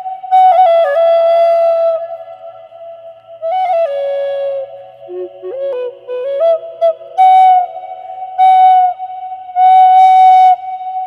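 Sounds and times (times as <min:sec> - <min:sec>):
flute notes with long echo: 0:00.0 - 0:11.0.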